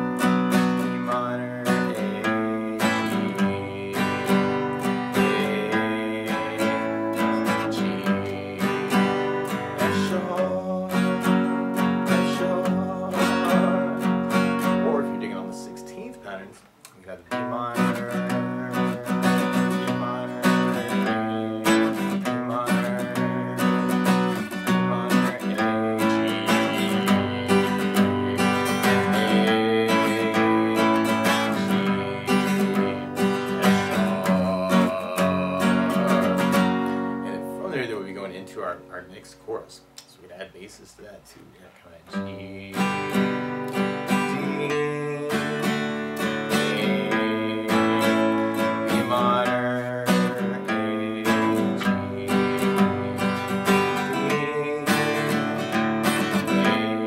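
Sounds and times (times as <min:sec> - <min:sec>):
acoustic guitar strumming: 0:00.0 - 0:41.2, 0:41.8 - 0:57.0.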